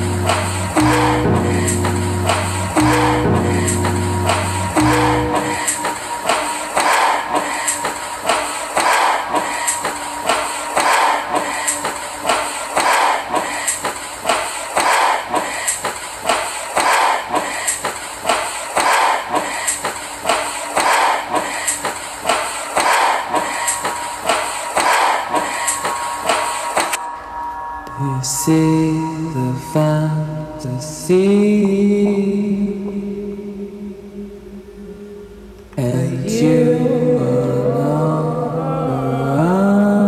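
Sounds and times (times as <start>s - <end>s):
electronic percussive loop: 0.0s - 30.1s, 31.2s - 33.4s.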